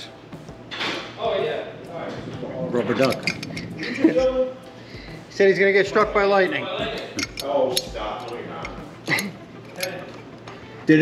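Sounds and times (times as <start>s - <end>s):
man speaking: 1.2s - 10.2s.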